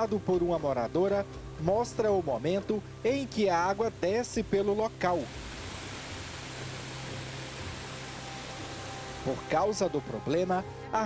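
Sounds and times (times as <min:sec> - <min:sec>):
water pouring over a wall: 0:05.0 - 0:09.9.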